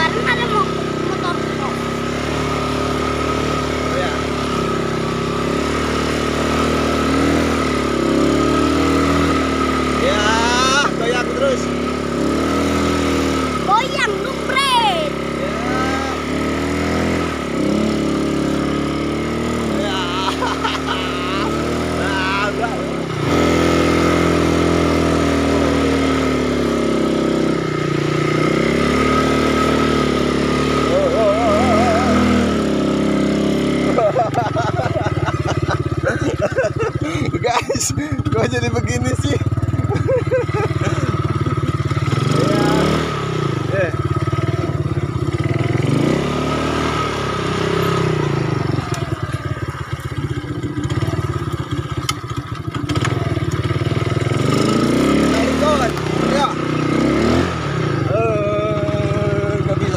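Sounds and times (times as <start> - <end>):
small atv engine revving: 0.0 - 59.9.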